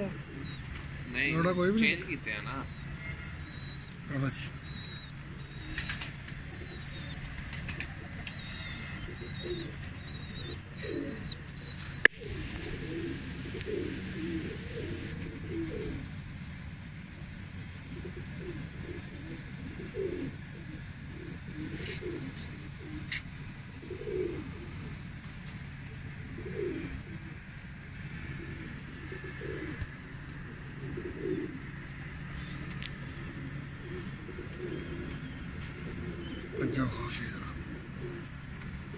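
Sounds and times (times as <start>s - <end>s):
pigeons cooing: 0.0s - 16.4s, 17.5s - 25.2s, 25.8s - 38.9s.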